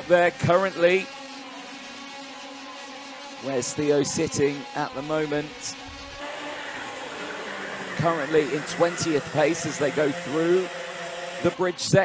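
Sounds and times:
kart engines at high revs: 0.0s - 12.0s.

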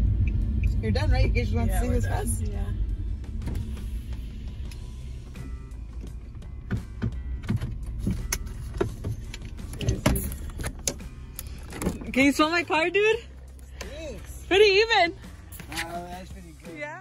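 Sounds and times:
car engine and road rumble: 0.0s - 17.0s
clicks and knocks inside car: 5.8s - 11.0s.

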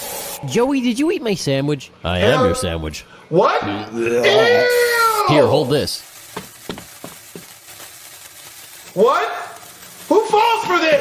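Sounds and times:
fuse hissing: 0.0s - 0.6s, 4.7s - 11.0s
sharp crackles: 4.7s - 11.0s.

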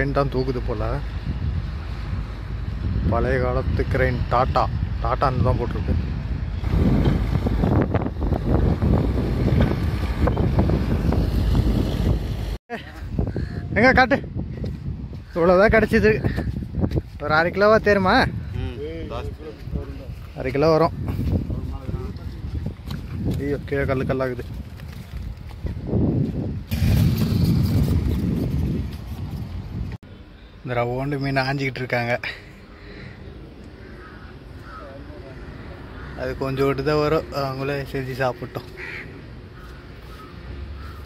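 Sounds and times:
wind buffeting microphone: 0.9s - 30.0s
diesel engine rumble: 4.8s - 12.6s.

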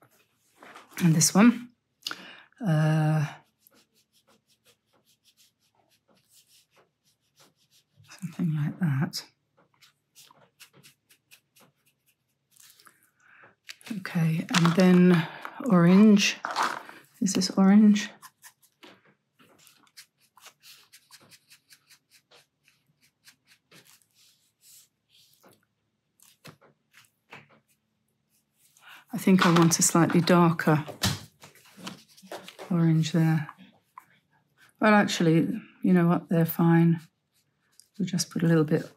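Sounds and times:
brush pen strokes on paper: 3.4s - 8.3s, 9.7s - 12.9s, 19.5s - 25.6s, 26.2s - 29.0s.

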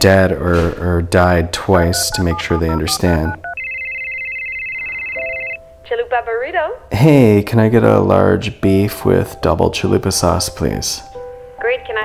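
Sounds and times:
person answering phone: 1.9s - 5.6s
high trilling ring tone: 2.0s - 5.6s.

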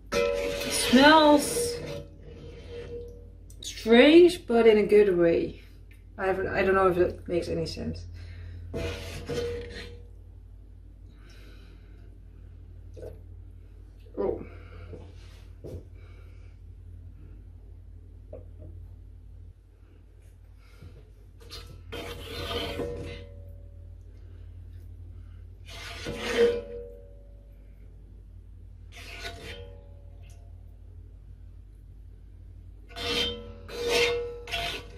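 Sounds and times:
low steady hum: 0.0s - 34.9s
spoon scraping in a pot: 0.1s - 3.2s, 8.7s - 10.0s, 21.4s - 23.4s, 25.6s - 26.9s, 28.9s - 29.8s, 32.9s - 34.9s.

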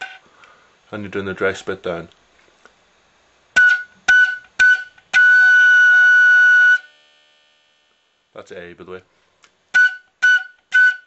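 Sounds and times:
flute playing one note: 9.7s - 11.0s.

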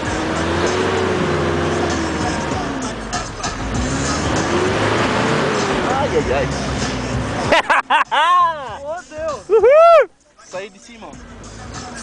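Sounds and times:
pickup engine labouring: 0.0s - 12.0s.

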